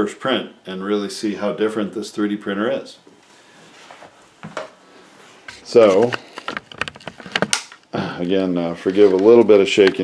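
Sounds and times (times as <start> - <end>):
camera handling clicks and knocks: 6.4 - 7.8.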